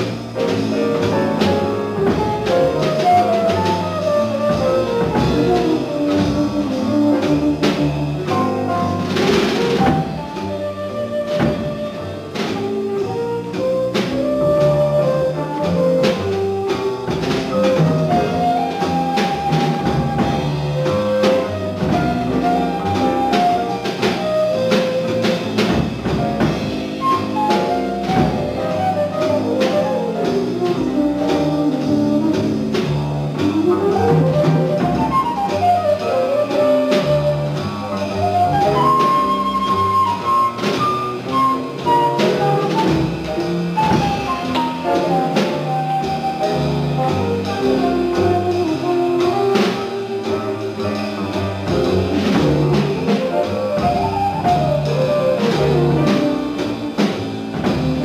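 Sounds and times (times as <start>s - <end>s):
double bass: 0.0s - 58.0s
drum kit: 0.0s - 58.0s
flute runs: 0.0s - 58.0s
piano: 0.0s - 58.0s.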